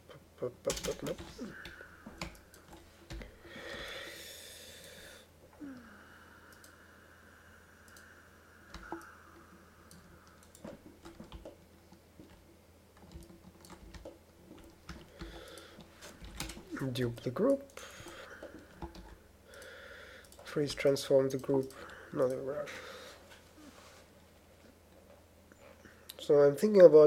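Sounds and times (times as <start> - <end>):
low steady hum: 0.0 - 27.0.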